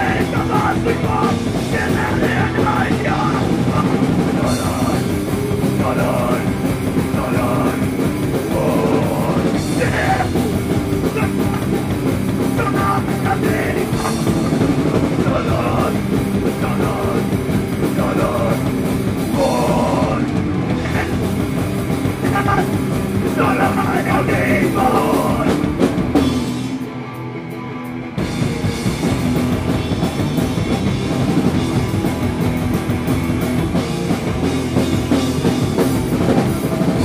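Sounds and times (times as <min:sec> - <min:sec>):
shouted vocals: 0:00.0 - 0:18.6, 0:19.3 - 0:21.4, 0:22.1 - 0:25.6
fast drum beat: 0:00.0 - 0:26.7, 0:28.2 - 0:37.0
bass guitar: 0:00.0 - 0:37.0
distorted guitars: 0:00.0 - 0:37.0.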